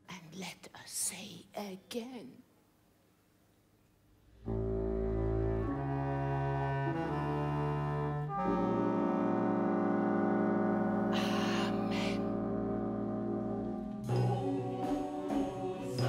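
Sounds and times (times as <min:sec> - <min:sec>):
orchestra playing sustained chords: 0:04.4 - 0:16.0.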